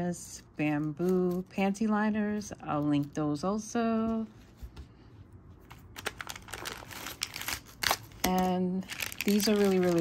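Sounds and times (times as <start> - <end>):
wrapped packets crinkling: 5.7 - 10.0.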